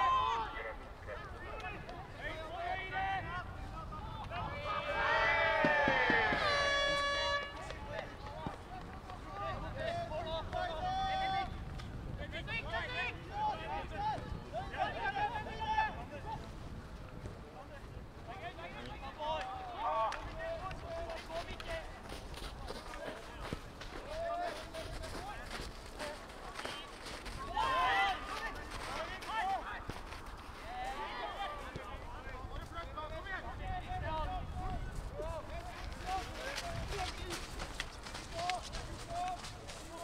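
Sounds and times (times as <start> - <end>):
distant footballers shouting: 0.0 - 16.5, 17.8 - 40.0.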